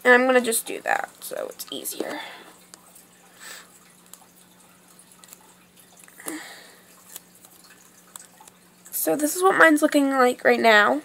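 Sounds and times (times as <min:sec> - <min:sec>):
low electrical hum: 0:00.0 - 0:11.0
soft breaths: 0:02.0 - 0:02.6, 0:03.3 - 0:03.8, 0:06.1 - 0:07.0.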